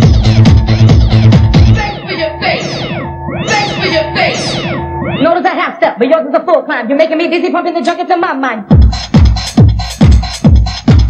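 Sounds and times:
low bass line: 0:00.0 - 0:05.3
techno music: 0:00.0 - 0:11.0
meow-like synth sounds: 0:01.8 - 0:05.6.

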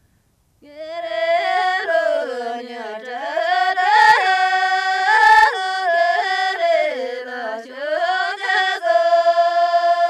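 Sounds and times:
person singing high slow melody: 0:00.6 - 0:10.0.

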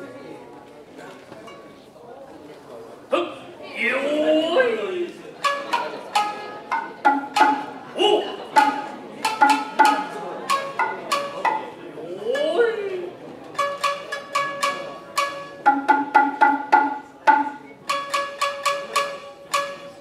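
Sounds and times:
shamisen plucks: 0:05.3 - 0:20.0
shoulder drum strikes: 0:05.4 - 0:11.7, 0:13.5 - 0:20.0.

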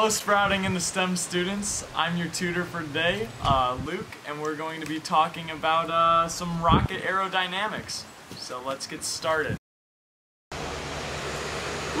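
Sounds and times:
outdoor background hiss: 0:00.0 - 0:09.6.

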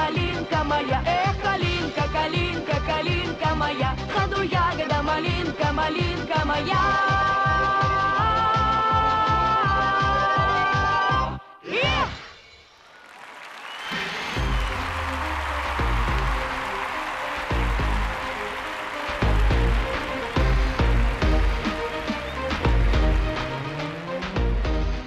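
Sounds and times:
audience applauding: 0:12.8 - 0:25.0
stage music with heavy bass beat: 0:14.0 - 0:25.0.

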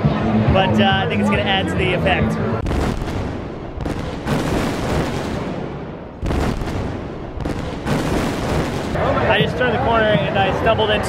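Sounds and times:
loud explosion booms: 0:02.6 - 0:09.0.

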